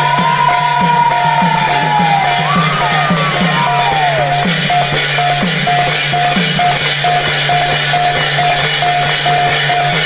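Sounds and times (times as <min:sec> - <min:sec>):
hand cymbals clashing: 0:00.0 - 0:10.0.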